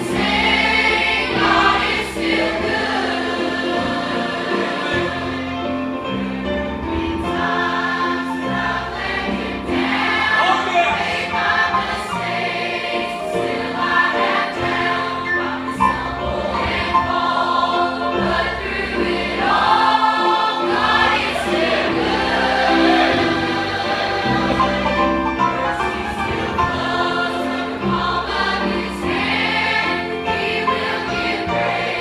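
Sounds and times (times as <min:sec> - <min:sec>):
choir singing a hymn: 0:00.0 - 0:32.0.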